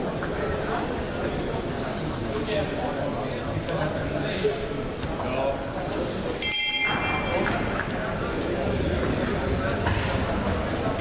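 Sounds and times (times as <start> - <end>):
chatter in a hall: 0.0 - 11.0
boxing ring bell: 6.4 - 7.7.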